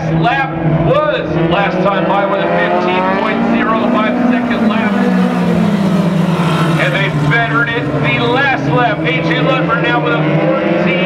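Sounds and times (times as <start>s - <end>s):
race car engines passing: 0.0s - 11.0s.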